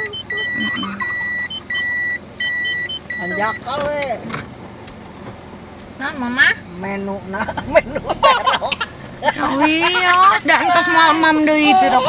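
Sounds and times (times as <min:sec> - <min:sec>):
car cabin noise: 0:00.0 - 0:12.0.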